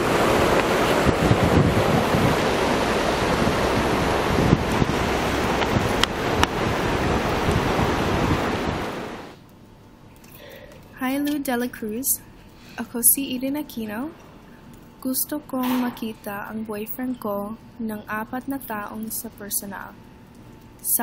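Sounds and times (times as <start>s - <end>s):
wind buffeting microphone: 0.0s - 9.3s.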